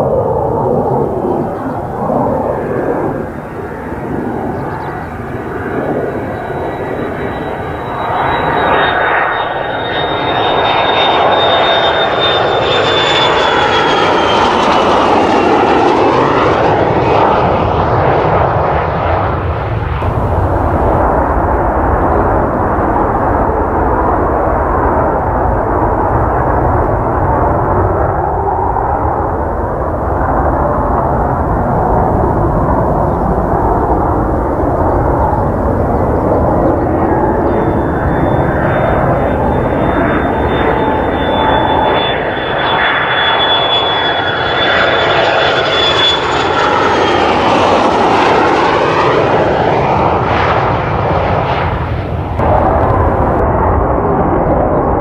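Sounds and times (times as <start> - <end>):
jet engine high whine: 0.0 - 55.0
jet roar: 0.0 - 55.0.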